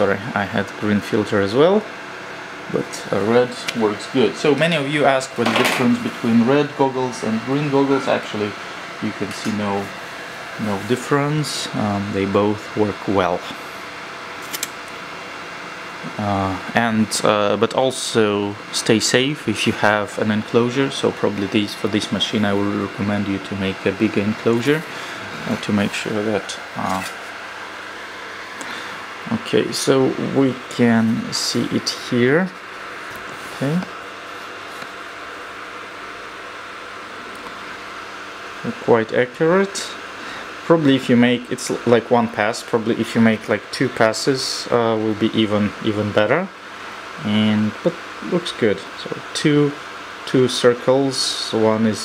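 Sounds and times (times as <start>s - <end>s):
cooling fan whirring: 0.0s - 52.0s.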